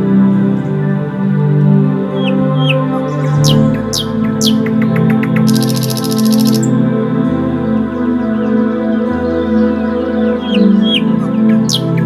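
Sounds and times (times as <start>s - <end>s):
calm ambient music: 0.0s - 12.0s
bird whistles and chirps: 2.2s - 6.7s, 10.3s - 12.0s
high-pitched bird trill: 2.6s - 6.7s, 10.5s - 12.0s.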